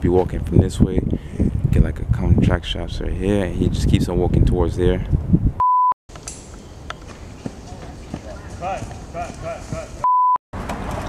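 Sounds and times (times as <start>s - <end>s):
faint outdoor ambience: 6.1s - 11.0s.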